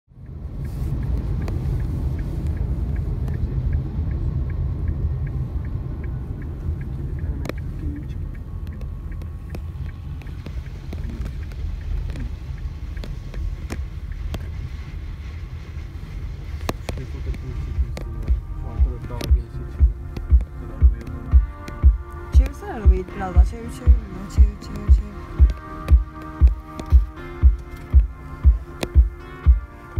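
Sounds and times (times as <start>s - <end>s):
faint regular ticking: 0.1s - 29.9s
vehicle rumble from inside: 0.1s - 29.9s
scattered clicks: 0.2s - 14.7s, 23.8s - 29.1s.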